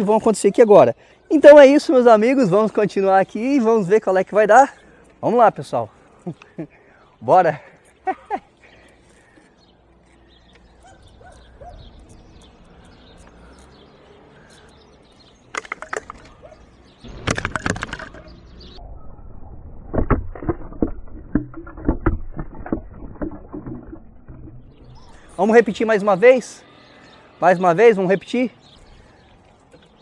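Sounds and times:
birds chirping: 0.0s - 19.1s, 21.6s - 30.0s
irregular knocks and thumps: 17.0s - 18.4s, 19.9s - 25.3s.

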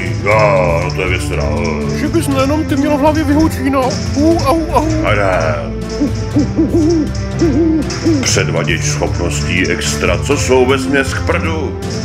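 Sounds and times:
cartoon owl hooting: 5.9s - 8.4s.

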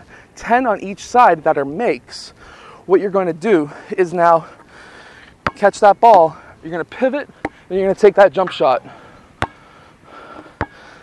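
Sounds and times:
basketball bouncing on asphalt: 5.4s - 5.8s, 7.3s - 7.6s, 8.9s - 10.9s.

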